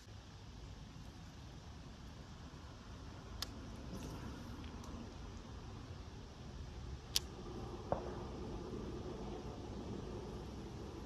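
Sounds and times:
low background rumble: 0.0 - 11.0
sharp clicks: 7.1 - 7.3.

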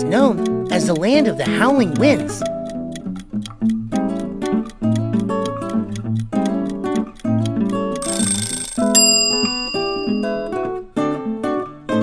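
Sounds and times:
acoustic guitar music: 0.0 - 12.0
bell-like chime: 8.0 - 10.6.

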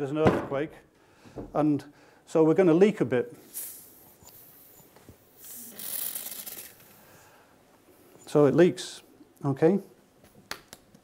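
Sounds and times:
gas hissing from bottle: 3.4 - 7.2.

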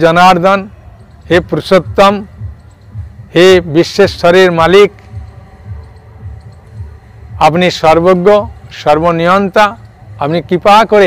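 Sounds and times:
low throbbing hum: 0.3 - 10.8.

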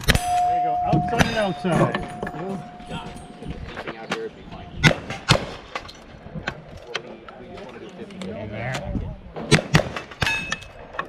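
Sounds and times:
people talking: 0.3 - 5.2, 6.2 - 9.6.

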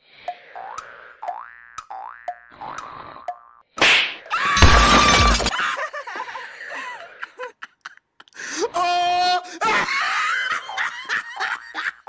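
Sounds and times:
cartoon boing: 1.2 - 3.6.

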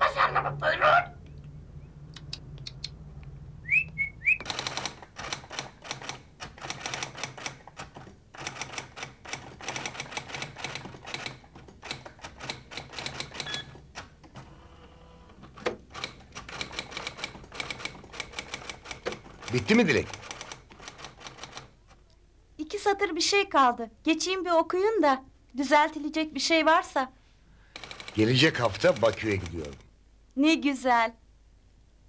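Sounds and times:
electric typewriter keystrokes: 4.4 - 14.5, 15.5 - 21.7, 27.8 - 29.9.

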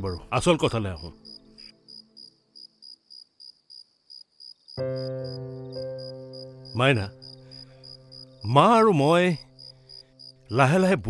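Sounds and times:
cricket chirping: 1.0 - 11.0.

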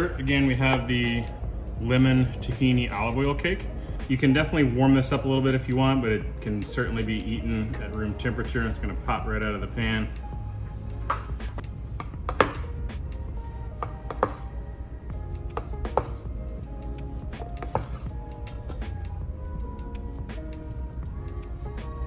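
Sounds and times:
background music: 0.0 - 22.0
knife slicing cake: 17.6 - 18.2.

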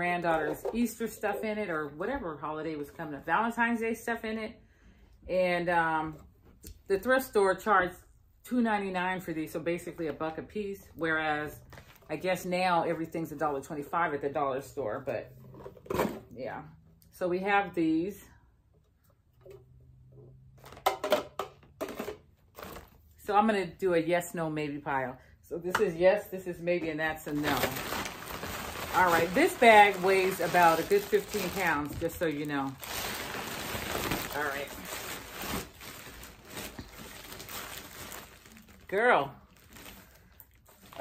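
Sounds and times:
plastic tumblers clicking and knocking: 0.2 - 1.6
plastic shopping bag rustling: 27.1 - 41.0.

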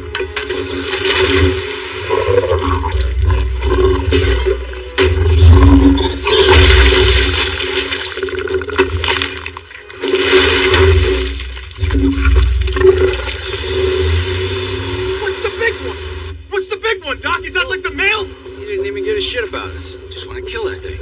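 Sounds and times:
crashing and breaking: 0.2 - 2.2, 4.0 - 13.9
rushing splashing noise: 6.4 - 16.3.

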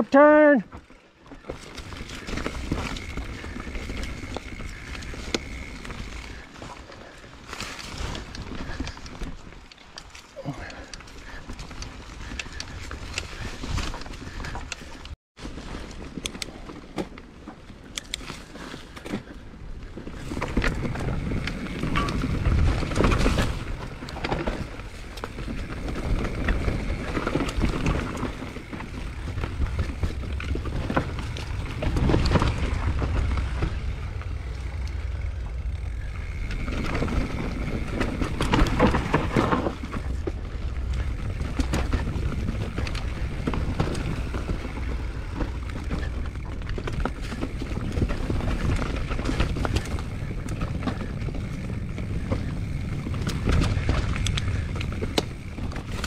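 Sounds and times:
bike tyres rumbling over dirt: 0.2 - 56.0
bike clattering and clicking: 0.8 - 56.0.

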